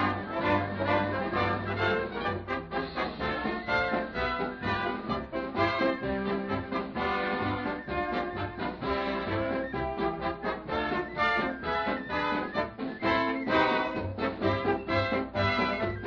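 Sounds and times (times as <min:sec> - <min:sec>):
swing band music with brass: 0:00.0 - 0:16.0.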